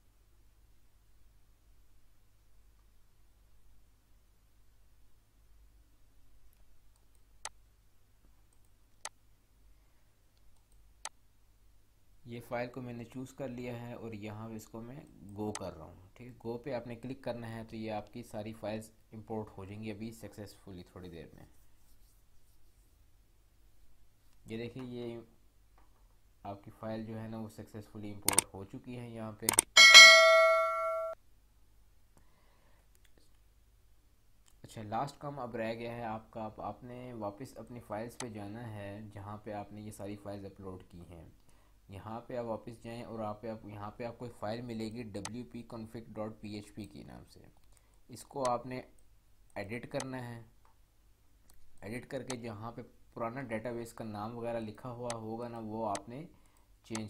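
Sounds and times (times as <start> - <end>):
computer mouse clicks: 29.5 - 29.7
notification bell ding: 29.8 - 31.2.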